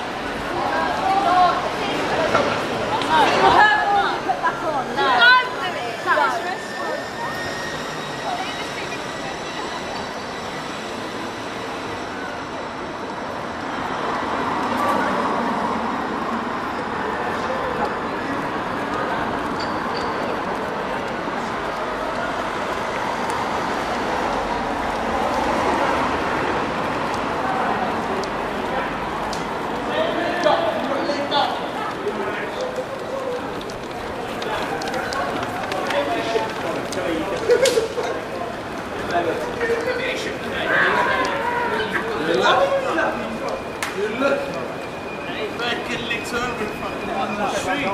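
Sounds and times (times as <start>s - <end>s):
indistinct voices and chatter: 0.0s - 47.9s.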